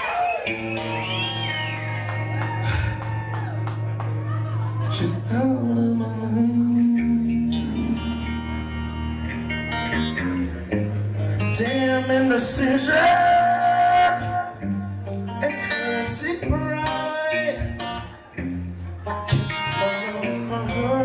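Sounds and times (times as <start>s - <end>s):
live rock band playing: 0.0s - 21.0s
man singing: 4.9s - 8.7s, 11.4s - 18.2s, 19.3s - 21.0s.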